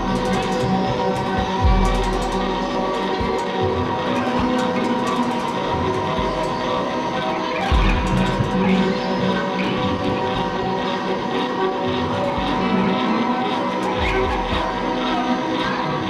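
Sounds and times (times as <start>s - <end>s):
droning sustained tones: 0.0s - 16.0s
deep bass: 1.6s - 2.9s, 7.7s - 8.6s.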